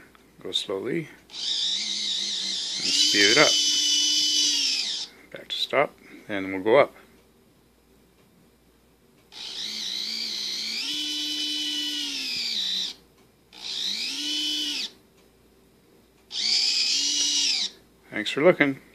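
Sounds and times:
electric winch motor whining: 1.3s - 5.1s, 9.3s - 15.0s, 16.3s - 17.8s.

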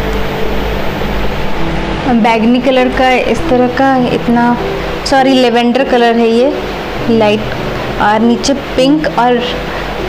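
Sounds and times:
low hum of running appliance: 0.0s - 10.0s.

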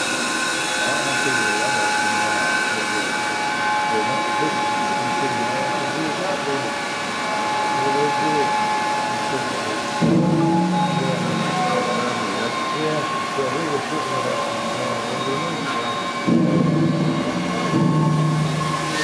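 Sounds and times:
steady high tones: 0.0s - 19.0s
steam engine running: 0.0s - 19.0s.

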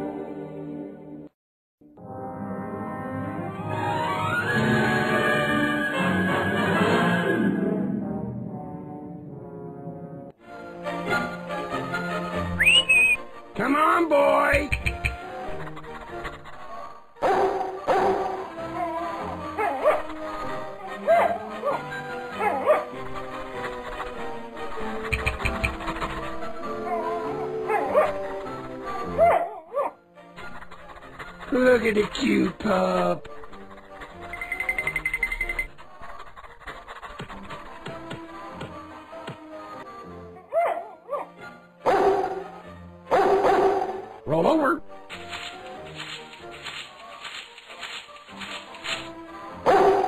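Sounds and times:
background music: 0.0s - 50.0s
cartoon dog barking: 17.2s - 20.1s, 21.0s - 22.9s, 29.0s - 30.0s, 40.4s - 41.3s, 43.1s - 44.1s, 49.7s - 50.0s.

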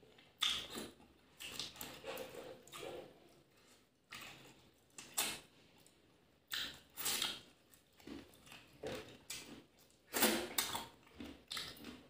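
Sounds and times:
wet chewing and mouth smacking: 0.0s - 12.0s.

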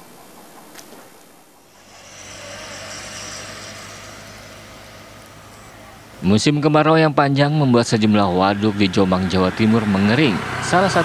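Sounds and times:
vehicle passing with rushing sound: 1.7s - 11.0s.

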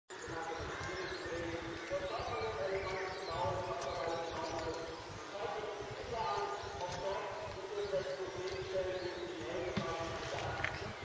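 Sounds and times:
overlapping voices talking: 0.1s - 11.0s.

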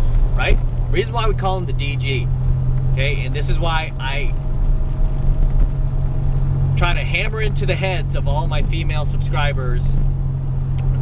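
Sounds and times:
car cabin low rumble: 0.0s - 11.0s.

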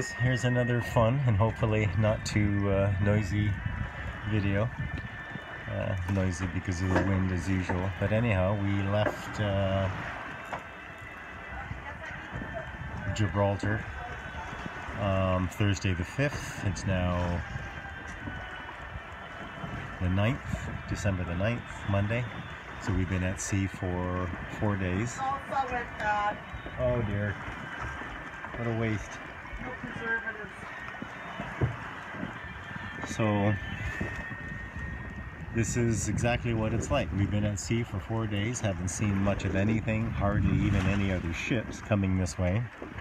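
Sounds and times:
wind buffeting microphone: 0.0s - 43.0s
low thump from wind gust: 31.0s - 37.7s.

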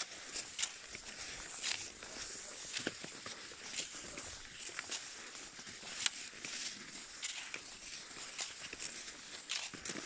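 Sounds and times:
ski pole strokes: 0.0s - 10.0s
skis sliding over snow: 0.0s - 10.0s.

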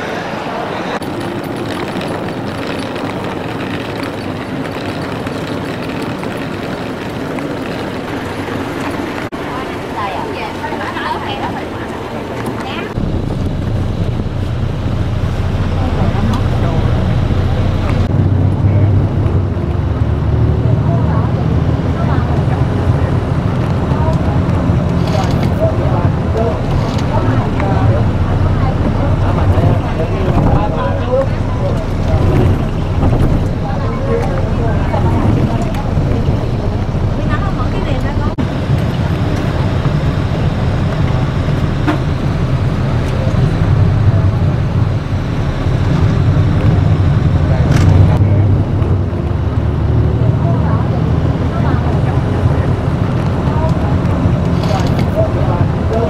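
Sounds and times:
vehicle engine and road noise: 0.0s - 56.0s
voices: 0.0s - 56.0s.

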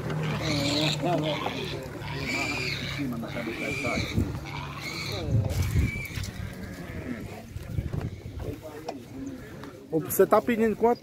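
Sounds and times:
animal call: 0.1s - 7.4s
people talking indistinctly: 0.2s - 11.0s.

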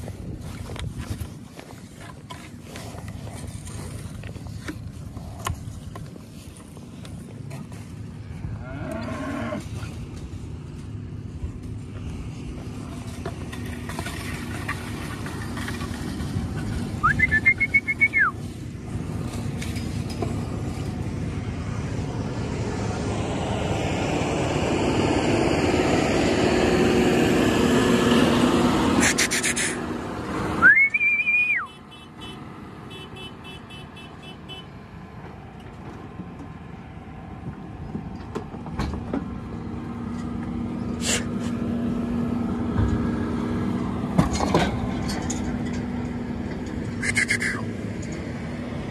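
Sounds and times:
tractor engine running: 0.0s - 48.9s
short whistles: 17.0s - 18.4s, 30.6s - 31.8s, 47.0s - 47.7s.

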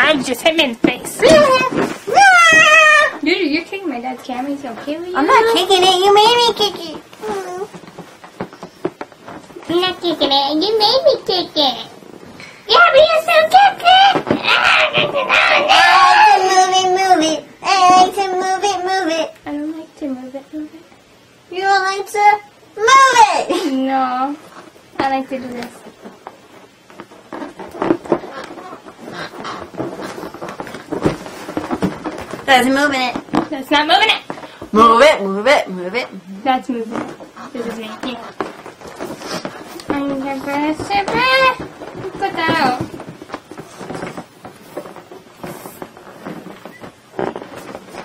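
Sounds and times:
balloon clicks and rustles: 0.0s - 19.6s, 23.5s - 48.0s
air rushing from balloon: 36.9s - 48.0s.

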